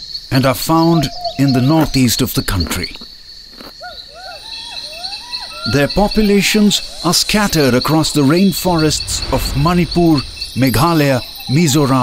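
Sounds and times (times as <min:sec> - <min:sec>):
insects trilling: 0:00.0 - 0:12.0
gibbon hooting calls: 0:03.8 - 0:07.2.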